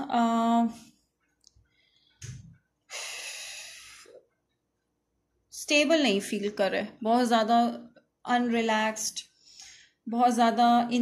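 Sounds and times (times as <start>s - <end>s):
woman breathing and exhaling: 1.7s - 4.2s.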